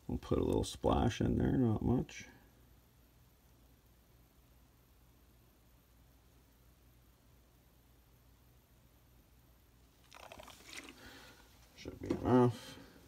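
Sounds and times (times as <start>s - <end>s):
dry crinkling rustle: 10.0s - 11.8s.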